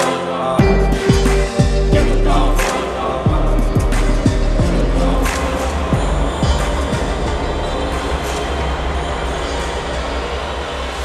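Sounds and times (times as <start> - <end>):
electronic music with bass: 0.0 - 10.6.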